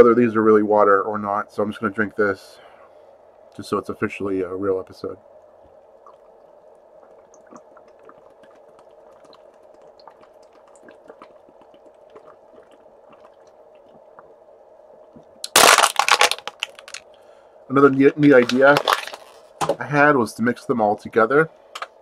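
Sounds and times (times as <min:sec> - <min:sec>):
low hum: 0:00.0 - 0:22.0
man swallowing water: 0:05.8 - 0:15.5
loud brief crackle: 0:15.4 - 0:17.0.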